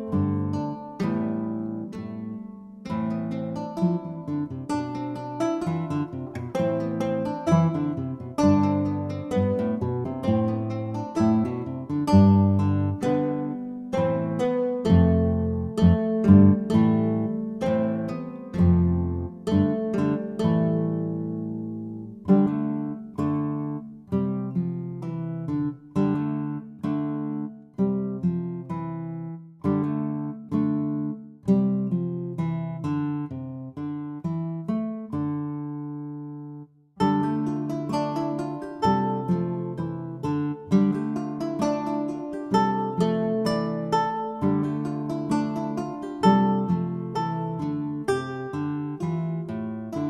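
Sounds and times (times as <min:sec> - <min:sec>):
plucked acoustic guitar: 0:00.0 - 0:50.0.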